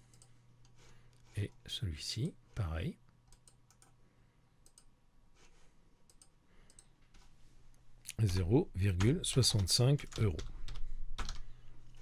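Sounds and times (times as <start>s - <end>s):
computer mouse clicks: 0.0s - 1.3s, 3.2s - 4.0s, 4.6s - 4.9s, 6.1s - 7.3s.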